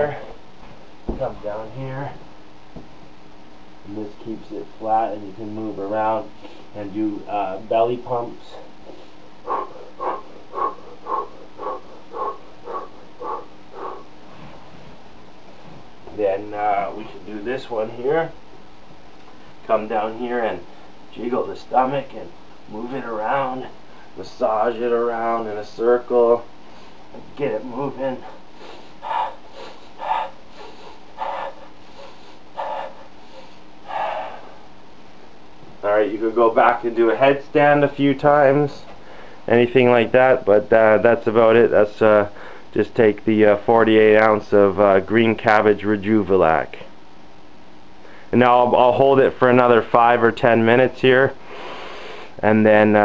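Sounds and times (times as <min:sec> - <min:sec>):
man breathing forcefully: 0:08.8 - 0:14.4, 0:28.2 - 0:34.7.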